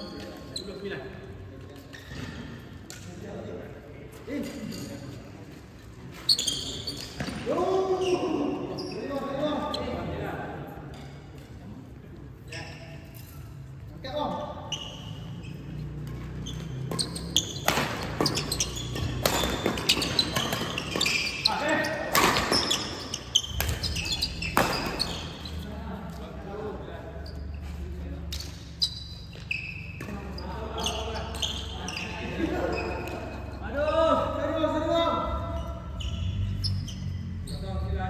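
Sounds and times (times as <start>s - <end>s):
voices echoing: 0.0s - 38.0s
rackets hitting shuttlecock: 16.0s - 25.4s.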